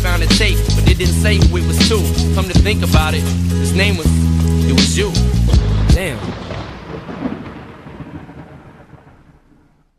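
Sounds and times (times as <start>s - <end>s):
rain: 0.1s - 9.9s
rumbling thunder: 5.5s - 9.9s.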